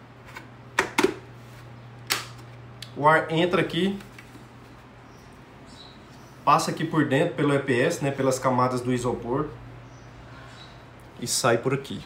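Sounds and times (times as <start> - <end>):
plastic helmet clicks and knocks: 0.8 - 1.2.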